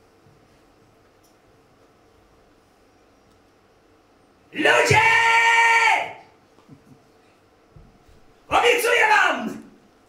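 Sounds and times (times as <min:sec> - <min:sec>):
man calling out through amplifier: 0:04.5 - 0:06.2, 0:08.5 - 0:09.8.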